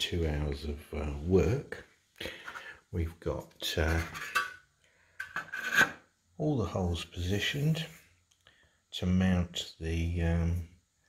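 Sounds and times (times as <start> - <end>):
metal part rubbing on board: 5.2 - 6.0.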